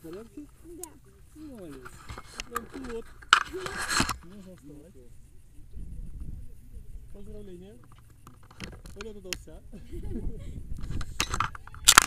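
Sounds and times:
sliding across grass: 0.0 - 5.0.

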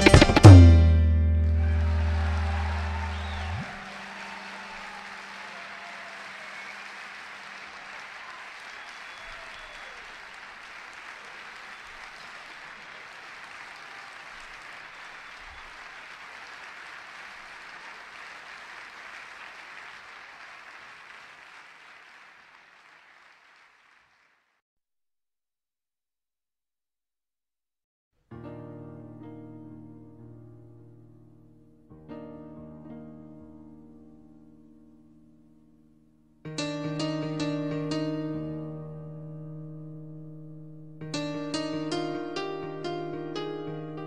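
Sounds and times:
audience applauding: 1.3 - 24.6.

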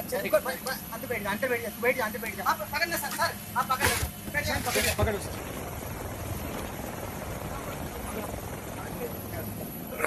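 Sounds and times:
helicopter noise inside cabin: 0.0 - 10.0.

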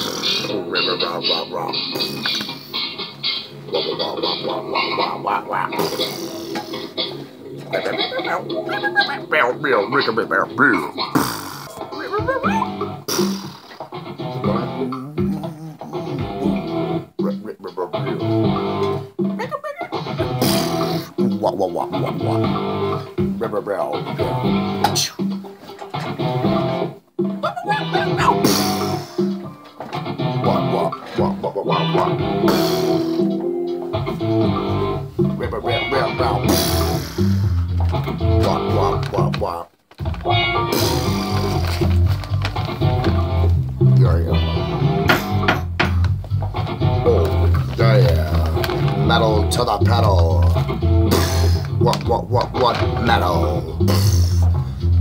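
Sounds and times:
man making vocal sounds: 0.0 - 2.8, 3.7 - 25.4, 27.4 - 29.5, 30.2 - 33.4, 34.1 - 39.7, 40.6 - 42.0, 46.9 - 55.0
plucked guitar music: 11.8 - 55.0.

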